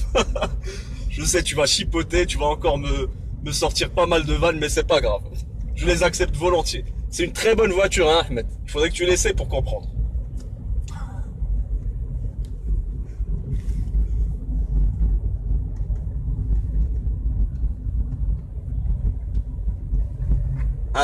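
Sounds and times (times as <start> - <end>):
car engine rumble: 0.0 - 21.0
road noise: 0.0 - 21.0.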